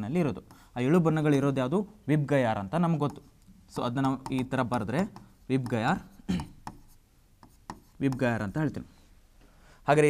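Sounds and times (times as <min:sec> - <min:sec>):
stylus tapping on whiteboard screen: 0:03.0 - 0:03.3, 0:03.9 - 0:08.4.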